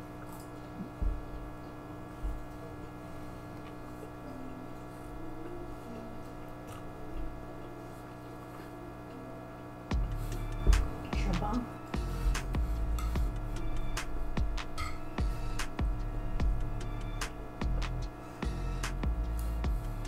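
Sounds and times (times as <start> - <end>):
low electrical hum: 0.0 - 20.0.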